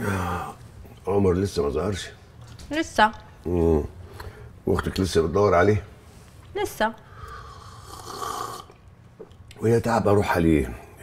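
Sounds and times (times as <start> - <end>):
man slurping drink: 7.2 - 8.8.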